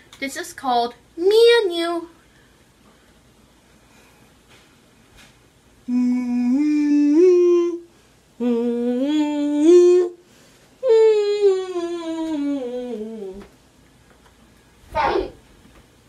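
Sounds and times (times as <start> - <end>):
girl humming: 5.8 - 10.2, 10.8 - 13.5.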